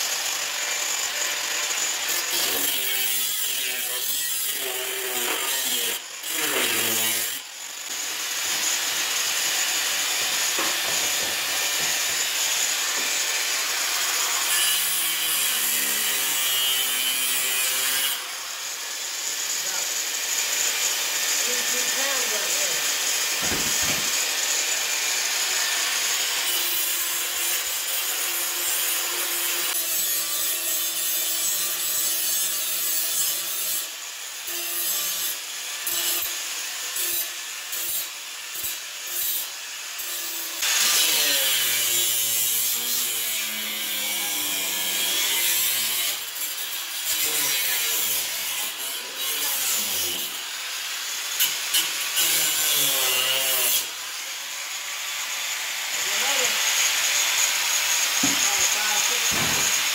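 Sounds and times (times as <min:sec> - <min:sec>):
angle grinder cutting steel: 0:00.0 - 0:59.9.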